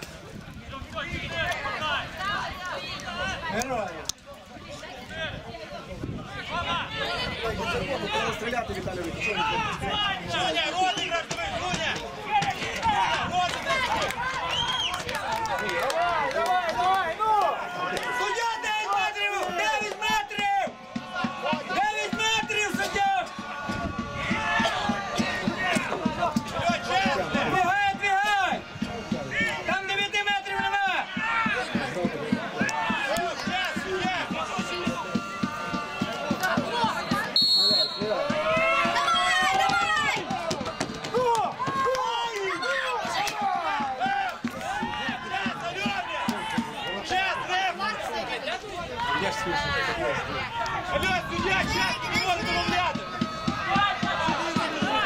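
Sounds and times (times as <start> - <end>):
men shouting and calling out: 4.8 - 55.0
short high whistle blast: 37.4 - 38.2.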